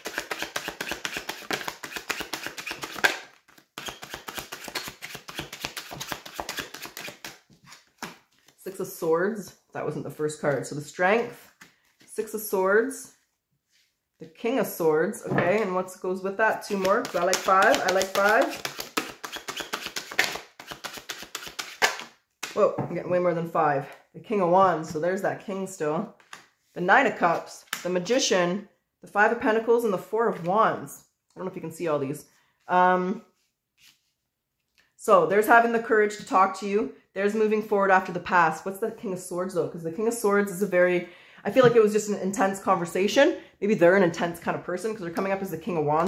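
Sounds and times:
cards being shuffled: 0.0s - 8.6s, 16.6s - 22.6s.

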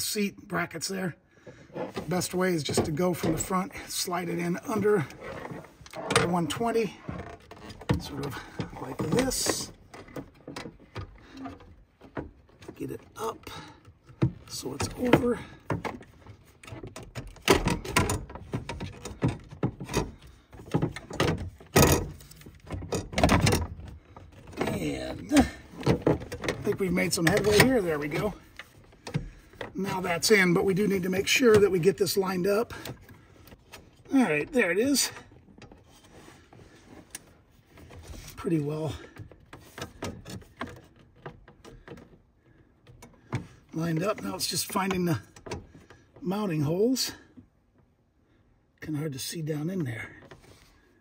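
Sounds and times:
plastic bracket knocks and scrapes: 1.4s - 3.8s, 4.6s - 46.2s.

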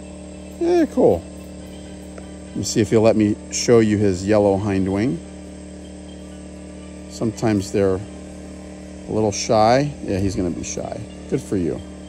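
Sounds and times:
portable generator humming: 0.0s - 12.0s.

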